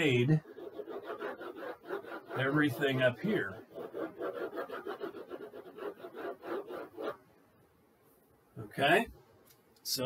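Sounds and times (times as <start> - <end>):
stylus scrubbing on whiteboard: 0.0 - 7.2.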